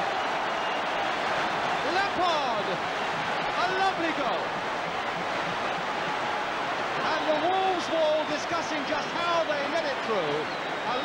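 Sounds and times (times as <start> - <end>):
crowd cheering: 0.0 - 11.0.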